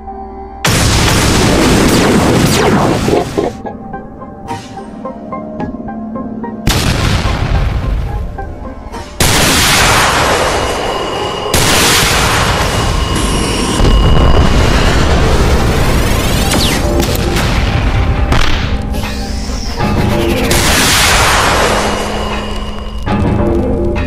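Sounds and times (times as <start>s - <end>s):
background music: 0.0s - 24.0s
cartoon explosion booms: 0.6s - 3.6s, 6.7s - 8.0s, 9.2s - 10.8s, 11.5s - 15.8s.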